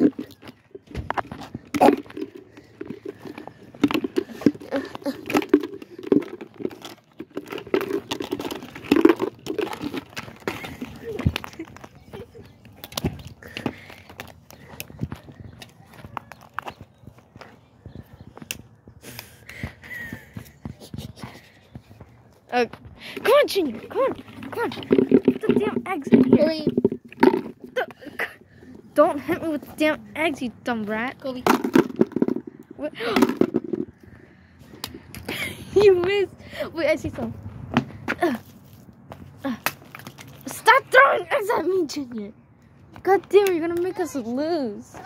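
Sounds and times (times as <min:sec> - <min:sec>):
plastic eggs and bucket clicking: 0:00.0 - 0:16.8, 0:23.2 - 0:27.9, 0:31.4 - 0:34.0.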